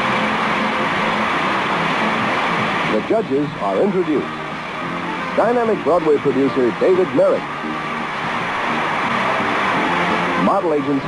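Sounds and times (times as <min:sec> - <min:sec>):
audience applause: 0:05.8 - 0:11.0.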